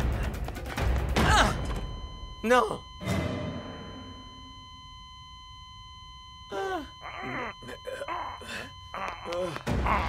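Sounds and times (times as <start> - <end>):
patient monitor flatline tone: 1.3 - 10.0.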